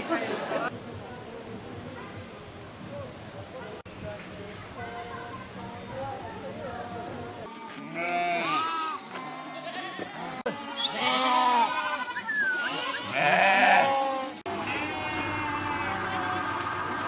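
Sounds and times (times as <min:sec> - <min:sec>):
sheep and goats bleating: 0:07.4 - 0:17.0.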